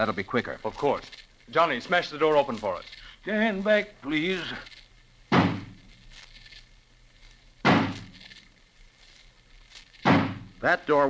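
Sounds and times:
axe striking wooden door: 5.3 - 5.8, 7.6 - 8.1, 10.0 - 10.5.

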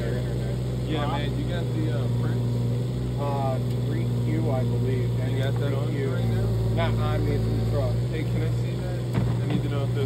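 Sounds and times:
excavator diesel engine humming: 0.0 - 10.0.

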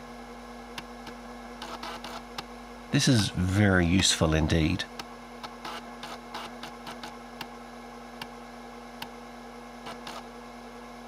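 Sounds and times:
floppy drive motor hum: 0.0 - 11.0.

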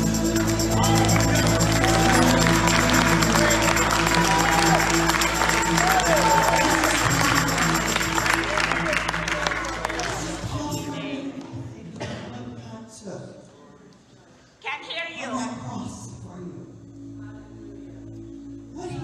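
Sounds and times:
people clapping: 0.0 - 11.9.

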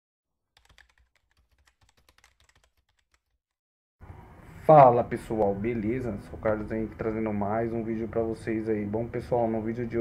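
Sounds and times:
faint keyboard typing: 0.6 - 3.4.

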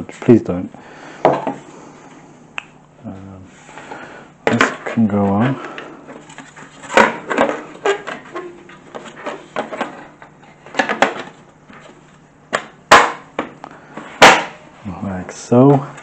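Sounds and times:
case panels knocking and clicking: 10.7 - 11.9.

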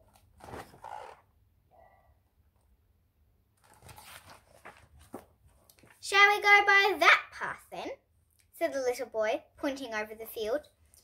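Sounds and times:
paper pages rustling: 3.6 - 6.0.

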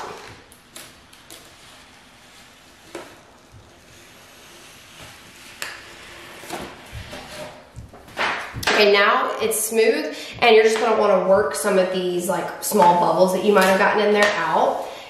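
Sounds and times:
ruler scraping across laminate: 1.3 - 7.7.

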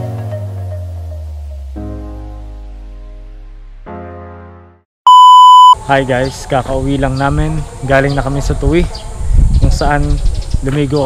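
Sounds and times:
background music: 0.0 - 4.8
loud electronic beep: 5.1 - 5.8.

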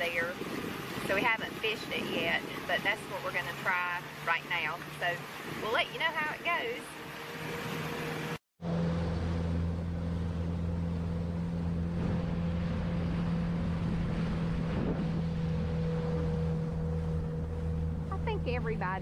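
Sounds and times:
outboard motor humming: 0.0 - 19.0
water rushing: 0.0 - 19.0
wind: 0.0 - 19.0.

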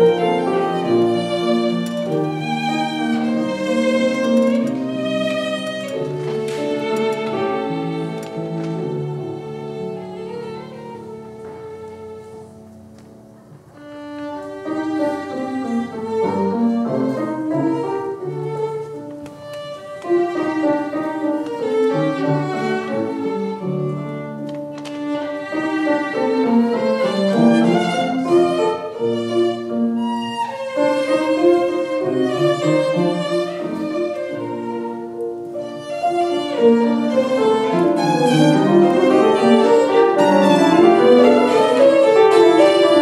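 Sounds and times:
piano chords: 0.0 - 43.0
violin melody: 0.0 - 43.0.

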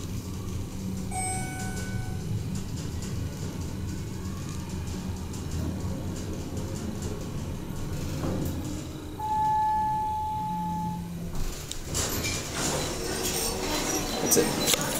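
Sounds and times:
elevator car humming: 0.0 - 14.9
elevator stopping clicks: 0.8 - 14.9
electronic arrival tone: 1.1 - 2.3, 9.2 - 11.2.

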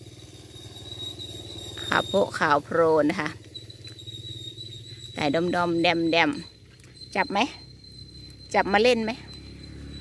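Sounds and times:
high-pitched insect call: 0.0 - 10.0.

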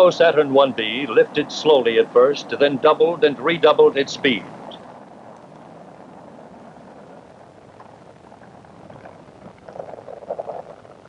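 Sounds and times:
rocket engine crackling rumble: 0.0 - 11.0.

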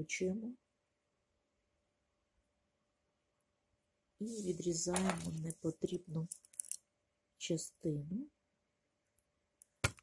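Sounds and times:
woman speaking: 0.0 - 0.6, 4.2 - 6.5, 7.4 - 8.4.

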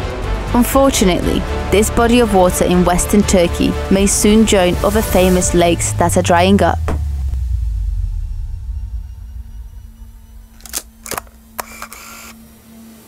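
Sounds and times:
low rumble: 1.2 - 13.0
faint steady hum: 5.5 - 13.0.

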